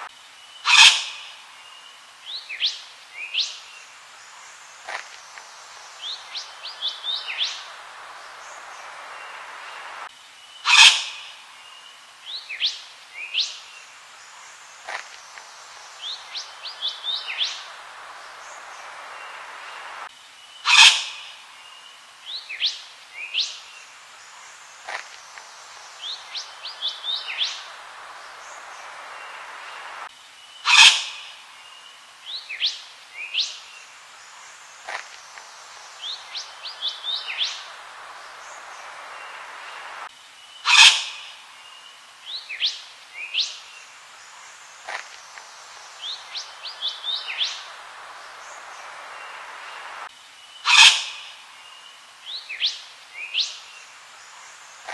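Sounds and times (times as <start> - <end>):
harsh bird call: 0.0 - 1.4, 10.6 - 11.4, 20.6 - 21.4, 30.6 - 31.4, 40.6 - 41.4, 50.6 - 51.4
steady background hiss: 0.0 - 54.9.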